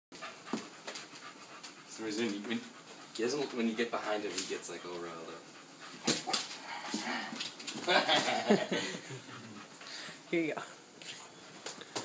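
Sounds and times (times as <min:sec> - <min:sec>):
dog panting: 0:00.2 - 0:12.0.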